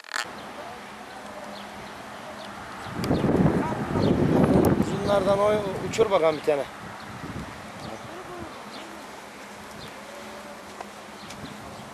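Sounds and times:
faint distant voices: 0.4 - 6.8, 7.6 - 11.9.

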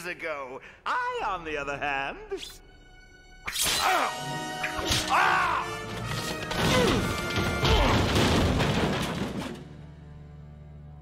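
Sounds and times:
dramatic orchestral score: 0.0 - 11.0
crashes and hits: 6.1 - 9.7.

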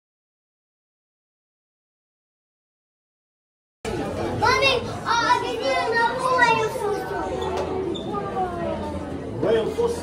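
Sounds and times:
hum of busy indoor space: 3.8 - 10.0
child chattering excitedly: 4.4 - 7.4.

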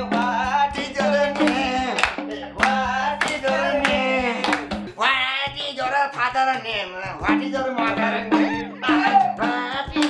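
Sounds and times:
person singing: 0.0 - 10.0
hand clapping: 0.2 - 5.0, 7.9 - 10.0.

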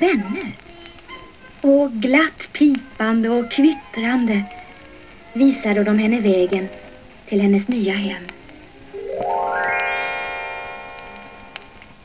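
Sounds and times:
bell-like chime run: 9.0 - 11.5.

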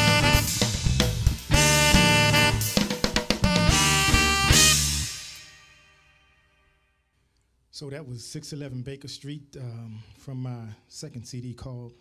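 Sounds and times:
drum hits: 0.0 - 5.1
smooth jazz band: 0.0 - 6.3
saxophone: 0.0 - 7.2.

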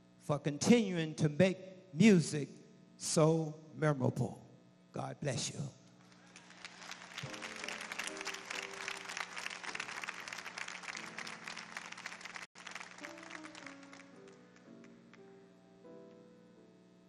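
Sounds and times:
audience applause: 6.1 - 15.0
soft sustained keyboard chords: 6.5 - 17.0.

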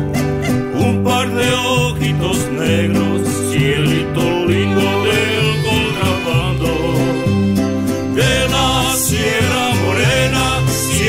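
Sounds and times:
deep bass line: 0.0 - 11.0
mariachi band playing: 0.0 - 11.0.

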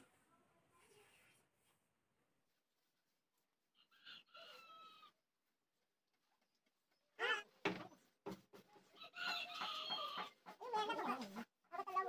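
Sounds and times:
chickens calling: 3.7 - 5.2, 8.8 - 11.4
rooster crowing: 3.8 - 5.2.

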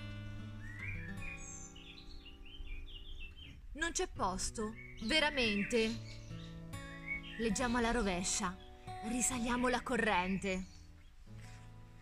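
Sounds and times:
plucked guitar-like chords: 0.0 - 2.3
small birds chirping: 0.0 - 12.0.

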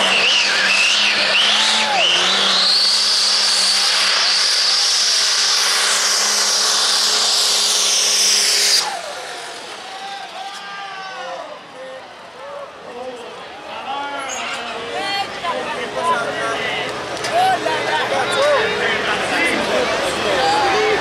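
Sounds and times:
diesel truck engine at high revs: 0.0 - 10.4.

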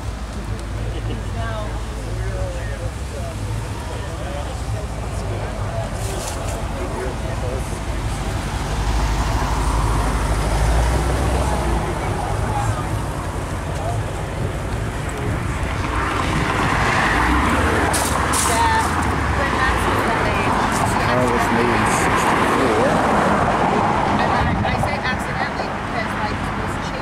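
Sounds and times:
low rumble of vehicles: 0.0 - 27.0
people talking: 0.6 - 27.0.

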